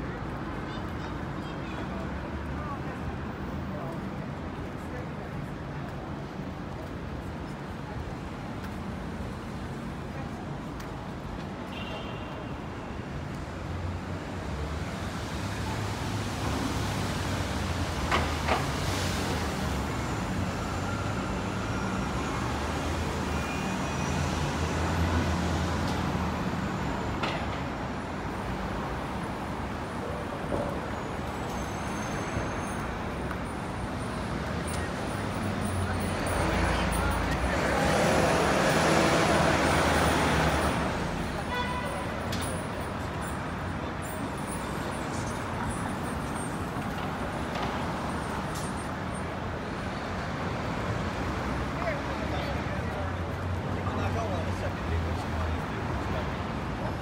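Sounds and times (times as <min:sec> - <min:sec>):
cars and buses passing: 0:00.0 - 0:57.0.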